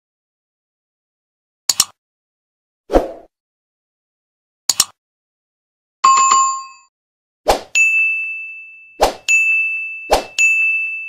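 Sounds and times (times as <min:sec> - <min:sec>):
quick swish: 0:02.9 - 0:03.3, 0:07.5 - 0:07.7, 0:09.0 - 0:09.2
bright bell-like ding: 0:07.8 - 0:11.0.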